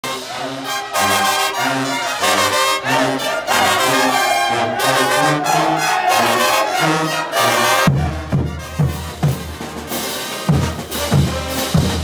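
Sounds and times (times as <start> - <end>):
brass band playing: 0.0 - 12.0
tuba bass notes: 0.0 - 12.0
snare and bass drums: 7.8 - 12.0.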